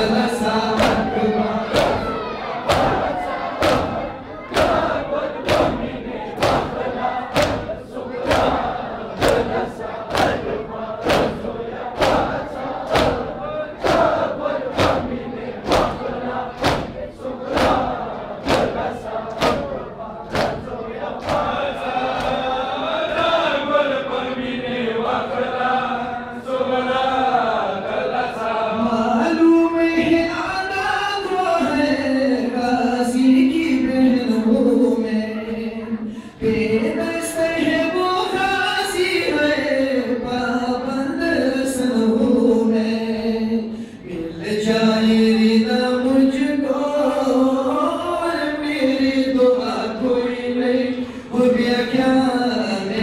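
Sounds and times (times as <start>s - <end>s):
men chanting and calling out: 0.0s - 29.3s
hands striking chests in unison: 0.8s - 22.4s.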